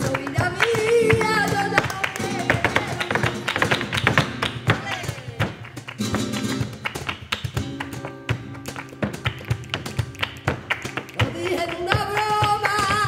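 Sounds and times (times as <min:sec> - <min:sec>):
sharp percussive taps: 0:00.0 - 0:13.0
spanish guitar playing: 0:00.0 - 0:13.0.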